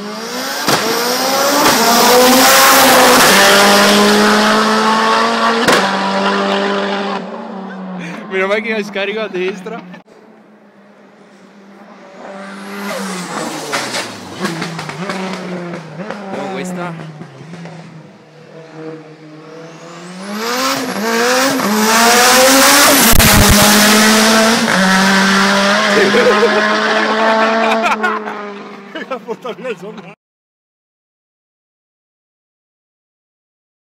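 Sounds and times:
race car engine revving: 0.0s - 10.0s, 11.0s - 29.1s.

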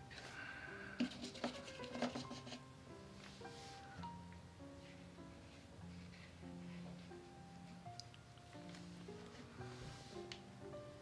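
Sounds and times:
faint instrumental music: 0.0s - 11.0s.

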